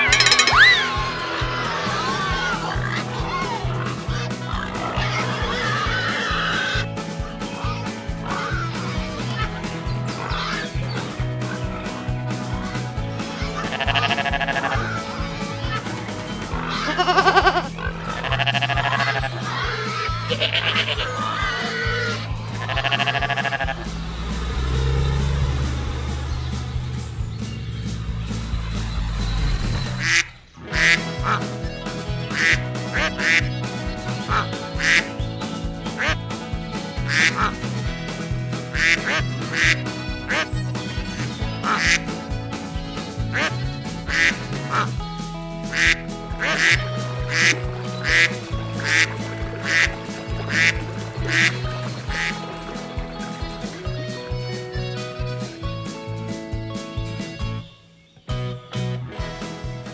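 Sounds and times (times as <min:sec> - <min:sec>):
animal calls: 0:00.0 - 0:45.0, 0:45.6 - 0:55.6
light background music: 0:00.0 - 0:59.9
cartoon duck quacks: 0:08.2 - 0:10.9, 0:13.3 - 0:23.9, 0:30.0 - 0:31.6, 0:32.2 - 0:35.1, 0:35.9 - 0:36.2, 0:37.0 - 0:37.6, 0:38.7 - 0:42.1, 0:43.3 - 0:44.9, 0:45.7 - 0:52.4.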